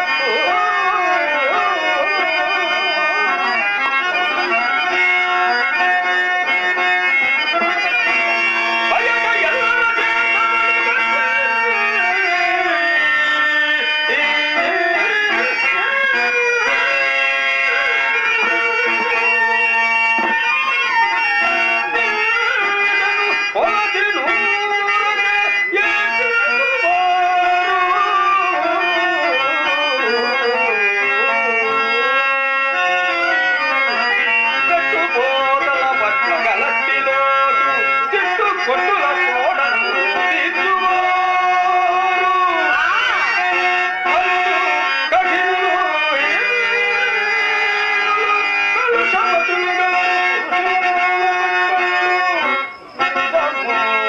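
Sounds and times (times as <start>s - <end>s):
man singing ornamented verse: 0.0s - 19.6s, 23.3s - 54.0s
harmonium sustained notes: 0.0s - 54.0s.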